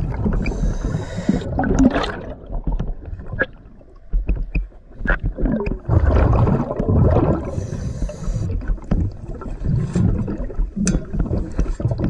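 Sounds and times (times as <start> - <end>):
low underwater rumble: 0.0 - 12.0
sharp clicks and knocks: 2.7 - 5.8.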